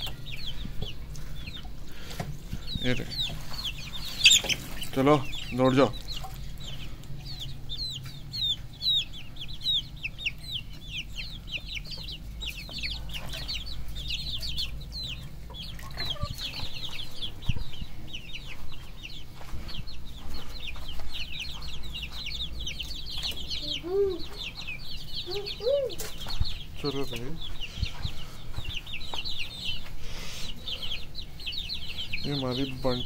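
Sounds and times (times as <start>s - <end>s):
chicks peeping: 0.0s - 33.0s.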